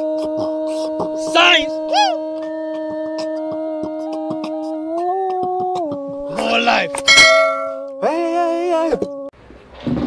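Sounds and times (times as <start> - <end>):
bell ding: 7.0 - 7.9
steady drone note: 7.0 - 7.9
wavering tone: 7.0 - 7.9.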